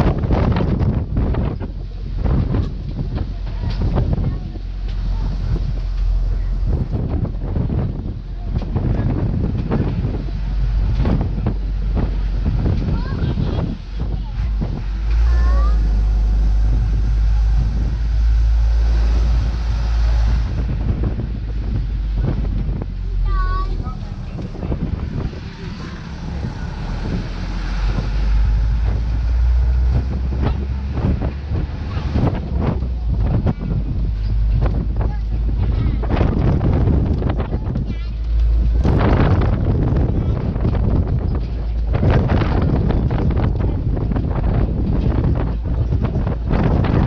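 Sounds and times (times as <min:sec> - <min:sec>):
truck rumbling on paved road: 0:00.0 - 0:47.0
wind buffeting microphone: 0:00.0 - 0:47.0.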